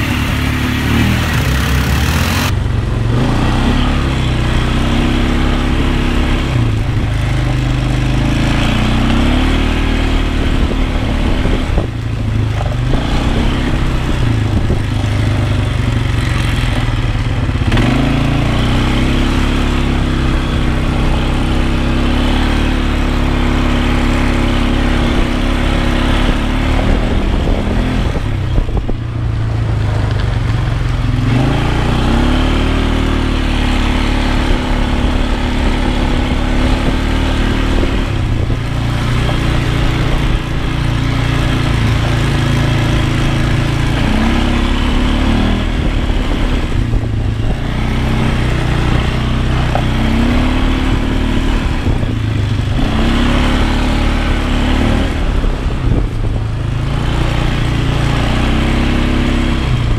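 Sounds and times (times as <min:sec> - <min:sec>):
quad bike engine revving: 0:00.0 - 0:59.9.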